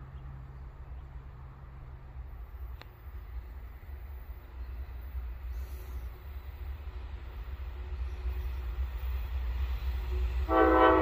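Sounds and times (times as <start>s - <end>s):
freight train rumble: 0.0s - 11.0s.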